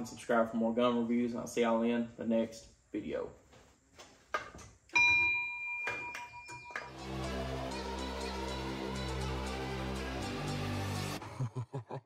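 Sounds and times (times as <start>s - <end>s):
bell-like ding: 5.0s - 7.0s.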